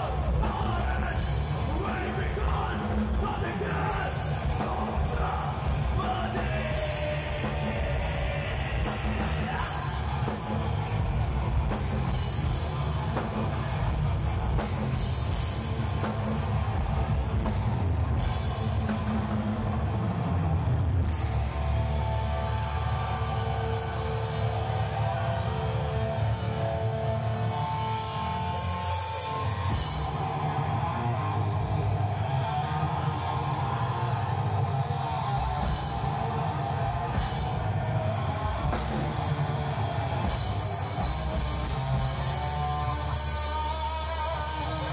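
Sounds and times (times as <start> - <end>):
heavy metal band playing live: 0.0 - 44.9
melodic lead guitar line: 0.0 - 44.9.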